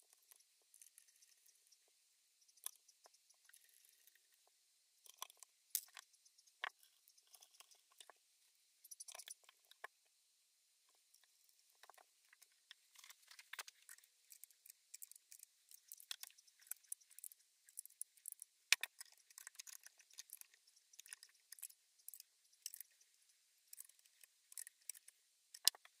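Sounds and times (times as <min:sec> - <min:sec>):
small metal parts clicking: 0:05.0 - 0:08.1, 0:08.9 - 0:09.9, 0:11.8 - 0:26.0.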